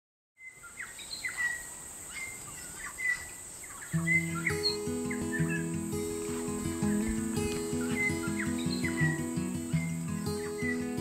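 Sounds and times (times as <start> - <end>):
birds chirping and whistling: 0.4 - 11.0
music with low notes: 4.0 - 11.0.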